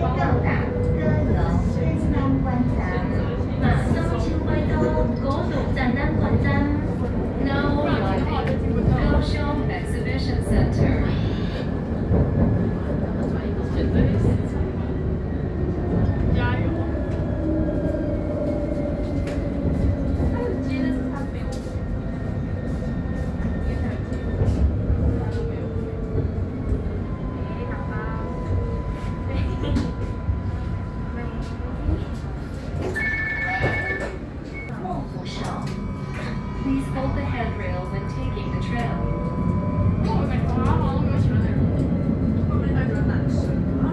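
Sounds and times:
tram wheels rumbling on rail: 0.0s - 43.9s.

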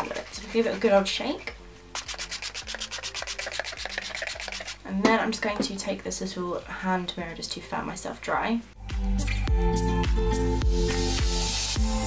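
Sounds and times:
spray bottle hissing: 2.0s - 4.8s.

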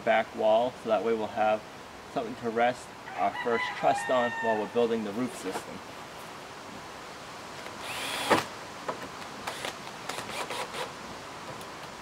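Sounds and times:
cordless drill whine: 7.8s - 8.5s, 9.4s - 10.9s.

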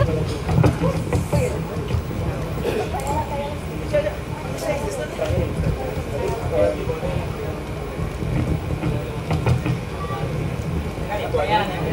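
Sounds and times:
indistinct voices chatting: 0.0s - 11.9s
outdoor event rumble: 0.0s - 11.9s.

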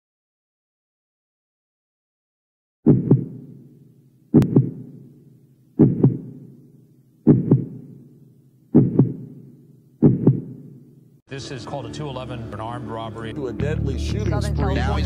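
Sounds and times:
deep heartbeat thumps: 2.9s - 3.4s, 4.4s - 5.0s, 5.8s - 6.5s, 7.3s - 8.0s, 8.7s - 10.8s.

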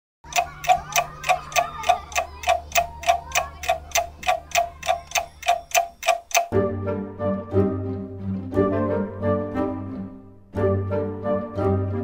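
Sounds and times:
clock-like ticking: 0.2s - 6.6s.

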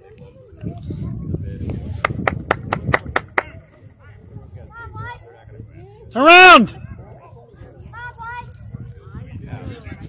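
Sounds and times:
hands clapping: 2.0s - 3.5s.

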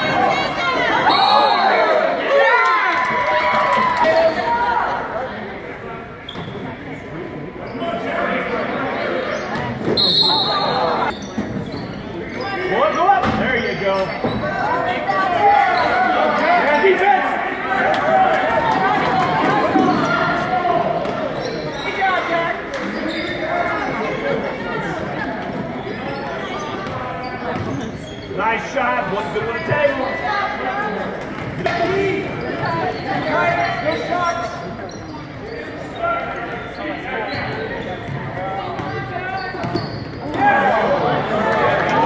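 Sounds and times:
voices echoing in gym: 0.0s - 42.0s.

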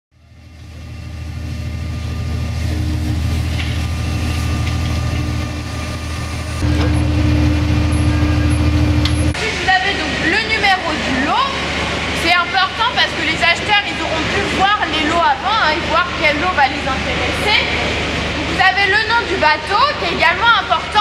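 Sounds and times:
held hum: 0.1s - 14.6s
low engine rumble: 0.1s - 21.0s.

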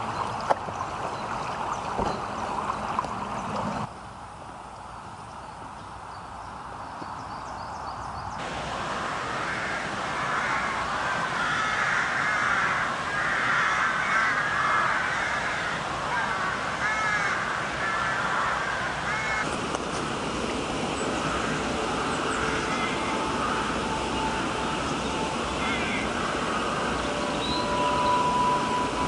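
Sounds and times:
crows cawing: 9.0s - 19.5s, 21.0s - 28.1s.

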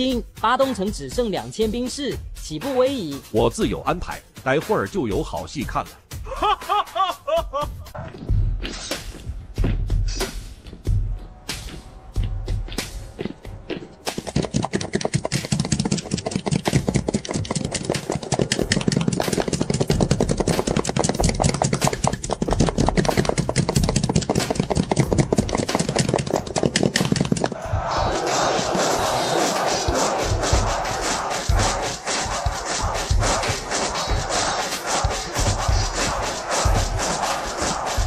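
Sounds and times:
galloping hooves: 12.3s - 27.6s
soldiers shouting: 27.6s - 38.0s.

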